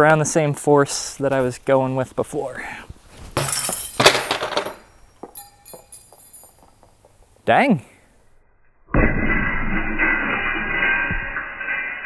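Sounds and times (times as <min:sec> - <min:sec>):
door crashing onto concrete: 0:03.4 - 0:04.8
metal hangers jingling: 0:03.4 - 0:06.7.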